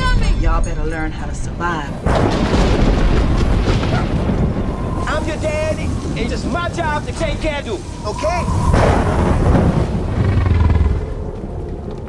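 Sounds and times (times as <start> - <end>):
deep loud rumble: 0.0 - 12.0.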